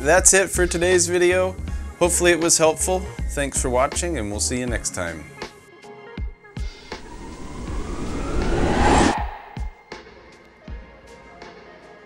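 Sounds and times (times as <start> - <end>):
rising whoosh with climbing tone: 6.8 - 9.9.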